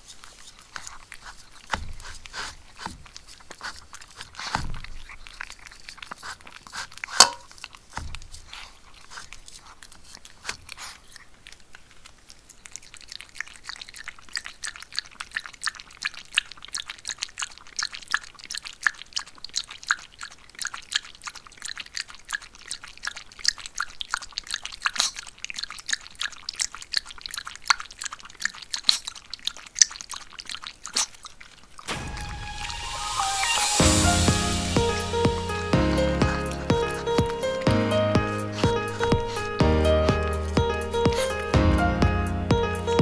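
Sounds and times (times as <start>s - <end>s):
dog lapping water from a bowl: 0.0s - 31.9s.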